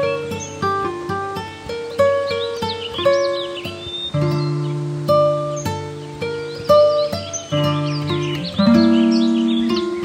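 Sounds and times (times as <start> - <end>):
birdsong chirps: 0.0 - 10.0
plucked acoustic guitar: 0.0 - 10.0.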